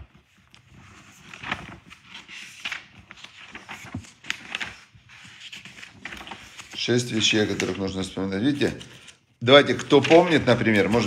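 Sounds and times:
book pages rustling: 0.0s - 11.0s.

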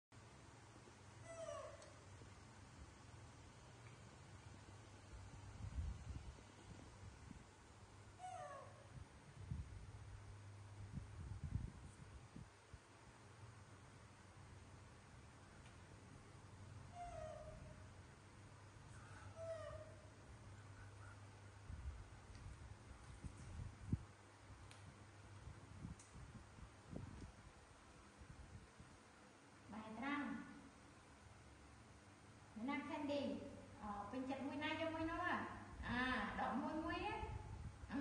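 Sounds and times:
macaque call: 19.0s - 20.1s.

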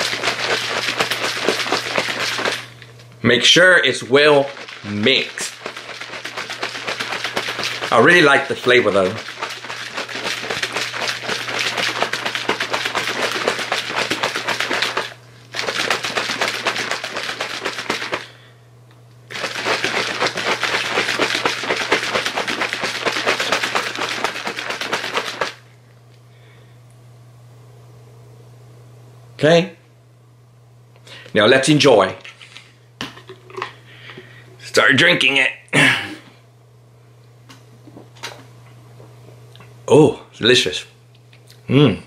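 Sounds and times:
plastic shaker bottle rattling: 0.0s - 2.8s, 4.0s - 18.3s, 19.3s - 25.6s
steady low hum: 0.0s - 42.0s.

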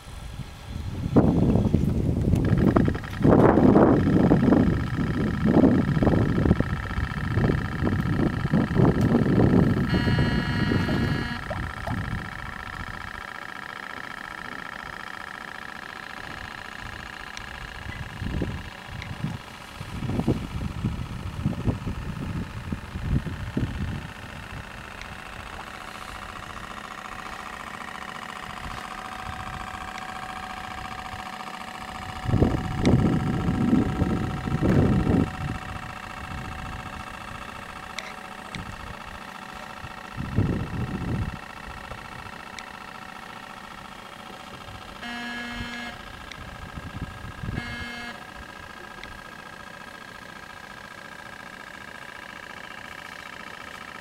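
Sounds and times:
steady mechanical whine: 0.0s - 54.0s
wind buffeting microphone: 0.2s - 13.1s, 17.8s - 24.8s, 32.0s - 37.9s, 40.1s - 42.3s.

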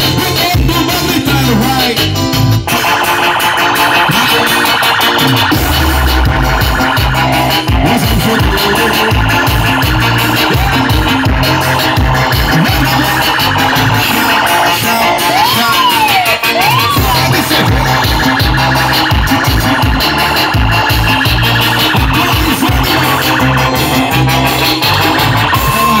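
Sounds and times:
bass: 0.0s - 26.0s
keyboard: 0.0s - 26.0s
percussion: 0.0s - 26.0s
synth tone swooping: 3.5s - 15.5s.

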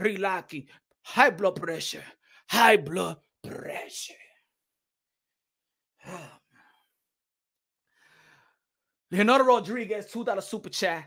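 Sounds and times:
man sighing: 6.0s - 6.8s
faint breath in: 7.9s - 8.8s.

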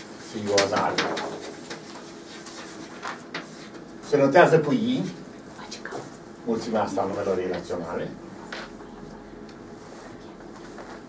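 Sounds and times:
chalk tapping and scratching: 0.5s - 3.8s.

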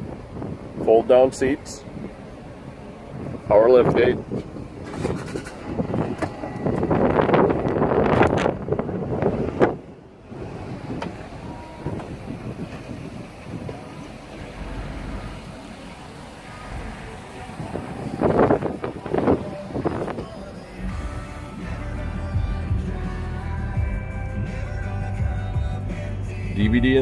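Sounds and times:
wind on microphone: 0.0s - 15.8s, 16.6s - 21.0s
outdoor noise: 0.0s - 27.0s.

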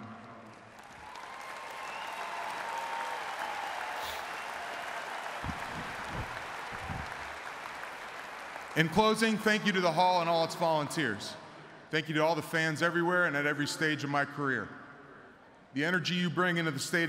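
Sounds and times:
audience applauding: 0.0s - 9.7s.

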